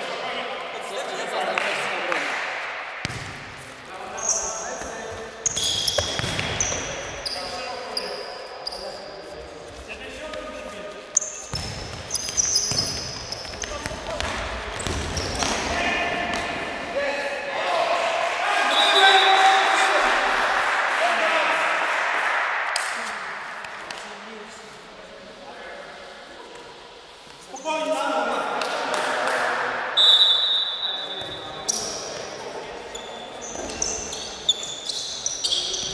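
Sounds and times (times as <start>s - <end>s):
ball kicked and bouncing: 3.0s - 3.5s, 5.9s - 6.8s, 11.5s - 15.6s
shoes squeaking on floor: 3.6s - 9.9s, 11.1s - 14.2s, 14.8s - 15.7s, 30.4s - 35.9s.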